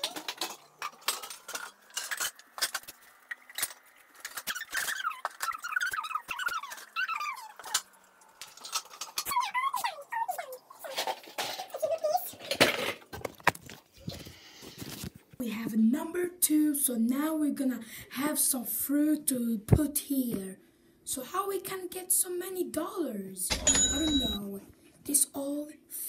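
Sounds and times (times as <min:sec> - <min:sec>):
bottles and kitchenware clinking: 0:23.5 - 0:24.4.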